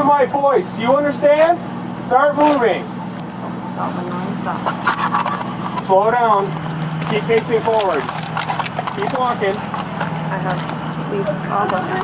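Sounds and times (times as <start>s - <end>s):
vehicle engine idling: 0.0s - 12.0s
voices calling: 0.0s - 12.0s.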